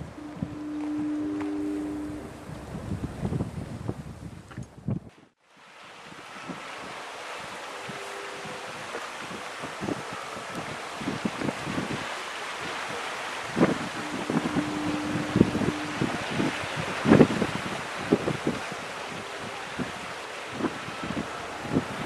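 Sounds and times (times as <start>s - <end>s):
wind buffeting microphone: 0.0s - 5.3s, 5.9s - 22.0s
steady wind hiss: 0.0s - 22.0s.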